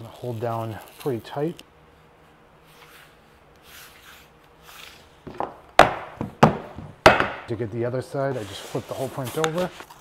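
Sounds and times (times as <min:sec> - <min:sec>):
hands rubbing tape on banner: 0:00.0 - 0:05.2.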